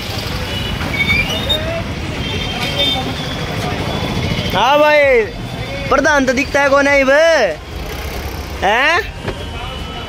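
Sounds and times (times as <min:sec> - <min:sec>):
low street rumble: 0:00.0 - 0:10.0
faint voices talking: 0:00.3 - 0:10.0.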